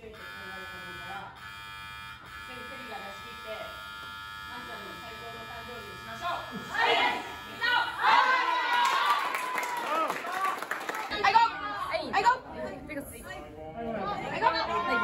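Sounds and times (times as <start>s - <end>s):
electrical buzz: 0.0s - 8.6s.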